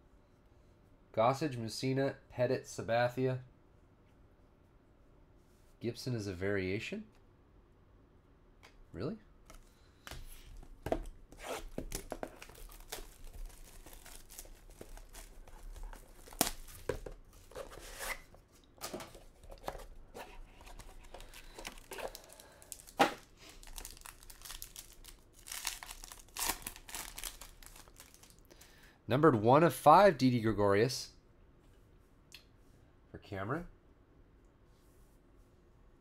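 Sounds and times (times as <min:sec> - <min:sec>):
box handling: 0:10.8 - 0:23.2
plastic shrink-wrap tearing: 0:11.6 - 0:16.7, 0:21.8 - 0:28.4.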